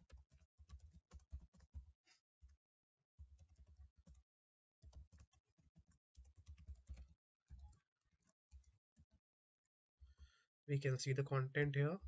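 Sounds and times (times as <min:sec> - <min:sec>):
faint keyboard typing: 0:00.0 - 0:02.6, 0:03.2 - 0:04.2, 0:04.8 - 0:09.2.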